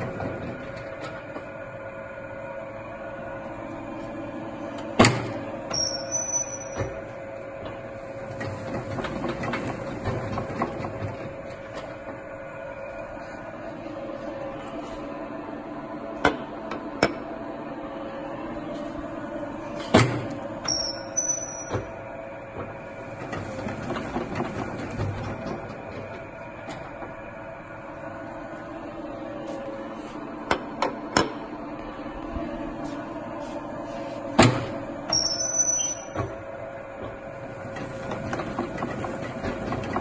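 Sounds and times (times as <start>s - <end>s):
machine motor hum: 0.0s - 40.0s
machine rattling and knocking: 8.2s - 12.2s, 22.6s - 27.0s, 37.0s - 40.0s.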